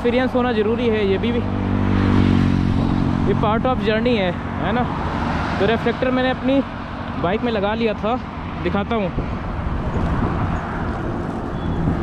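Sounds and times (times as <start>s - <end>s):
road noise from bicycle: 0.0s - 12.0s
wind buffeting microphone: 8.2s - 12.0s.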